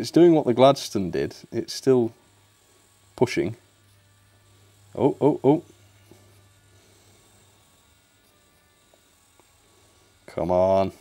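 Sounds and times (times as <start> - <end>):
small electric motor buzzing: 0.0 - 11.0.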